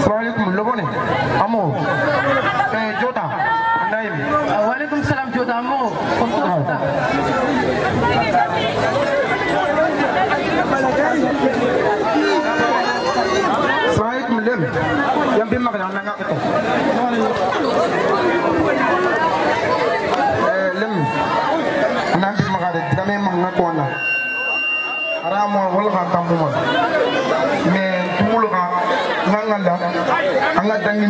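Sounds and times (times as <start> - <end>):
people talking over one another: 0.0 - 31.0.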